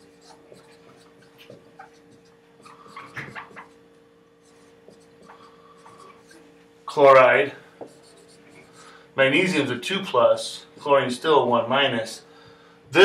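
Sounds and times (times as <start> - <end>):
marker writing on whiteboard: 0.0 - 3.8, 4.4 - 8.9
faint steady hum: 0.0 - 13.0.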